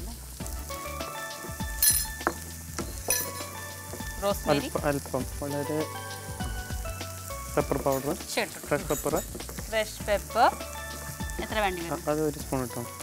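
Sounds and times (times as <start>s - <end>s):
vegetables sizzling in a pan: 0.0s - 13.0s.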